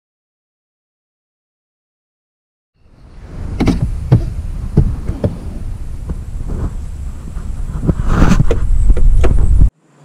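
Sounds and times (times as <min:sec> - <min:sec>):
low outdoor rumble: 0:02.8 - 0:09.7.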